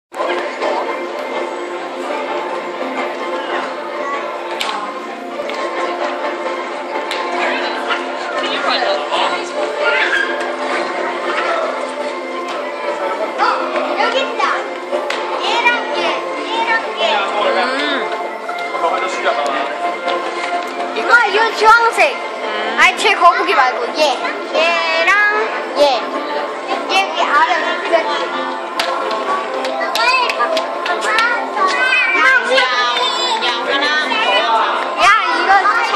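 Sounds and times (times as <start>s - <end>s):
ambient background music: 0.2s - 35.9s
children chattering and calling out: 0.2s - 35.9s.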